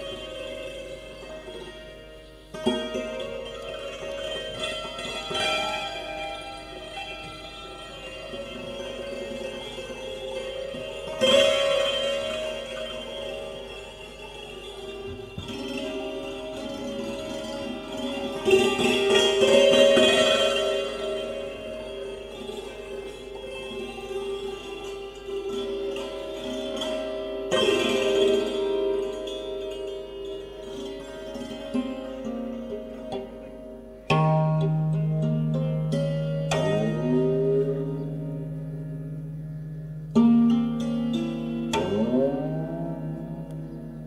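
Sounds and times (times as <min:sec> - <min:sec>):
hammered dulcimer playing slowly: 0:00.0 - 0:44.0
santoor strings ringing: 0:00.0 - 0:44.0.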